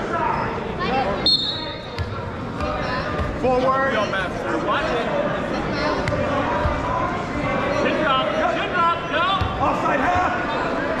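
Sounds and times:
voices echoing in a gym: 0.0 - 11.0.

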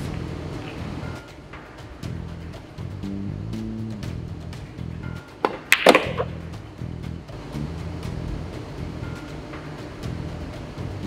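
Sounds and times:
background music: 0.0 - 11.0
billiard balls clacking: 4.2 - 7.2.

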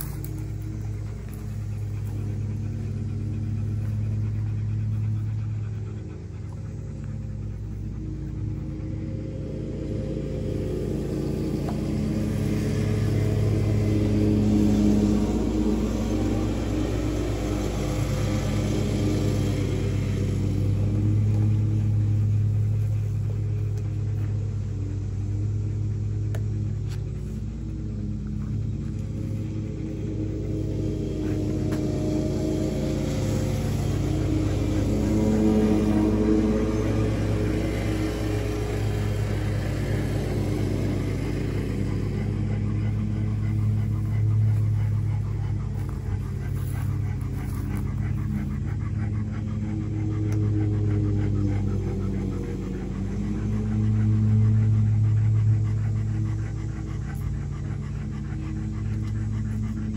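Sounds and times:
low mechanical motor hum: 0.0 - 59.9.

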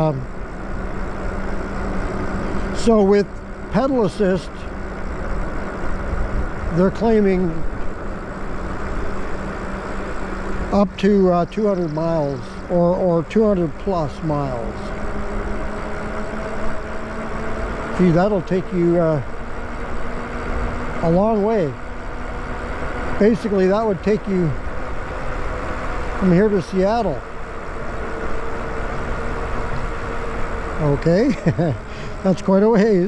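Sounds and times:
man speaking: 0.0 - 0.3, 2.8 - 4.6, 6.7 - 7.7, 10.7 - 14.9, 18.0 - 19.2, 21.0 - 21.8, 23.2 - 24.6, 26.2 - 27.2, 30.8 - 33.0
electric bike motor whine: 0.0 - 33.0
wind and road noise: 0.0 - 33.0.

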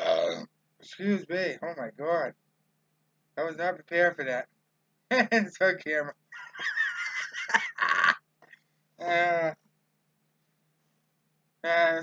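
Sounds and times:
man laughing hard: 6.4 - 8.2.

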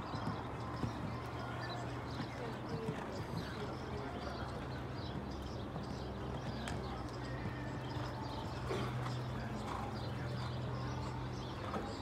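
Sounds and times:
horse hoofbeats on sand: 0.0 - 12.0.

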